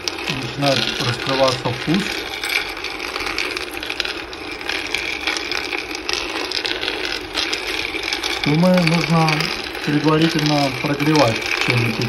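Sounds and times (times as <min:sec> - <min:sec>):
cocoa beans rattling in roaster: 0:00.0 - 0:12.0.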